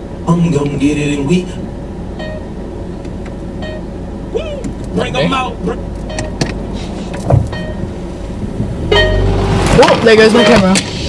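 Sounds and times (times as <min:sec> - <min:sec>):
idling car hum: 0:00.0 - 0:11.0
short plucked notes: 0:08.8 - 0:09.6.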